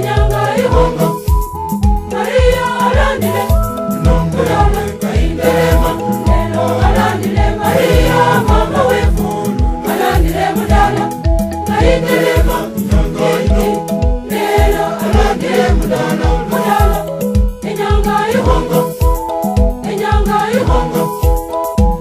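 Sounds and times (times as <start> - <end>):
choir singing: 0.0 - 1.4, 2.1 - 19.1, 19.8 - 21.4
steady low beat: 0.0 - 17.5
instrumental backing: 0.0 - 22.0.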